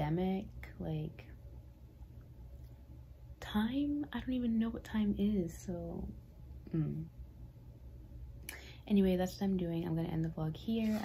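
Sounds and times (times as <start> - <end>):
woman speaking: 0.0 - 1.3, 3.4 - 7.1, 8.9 - 11.0
low room hum: 0.0 - 11.0.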